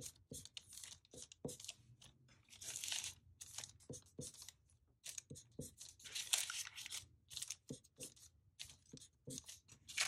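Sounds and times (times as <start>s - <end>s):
marker scratching on paper: 0.0s - 1.8s, 3.8s - 6.6s, 7.5s - 9.9s
paper rustling: 0.4s - 10.0s.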